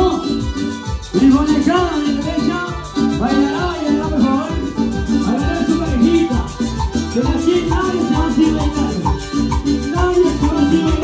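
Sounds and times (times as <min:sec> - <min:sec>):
live latin dance band: 0:00.0 - 0:11.0.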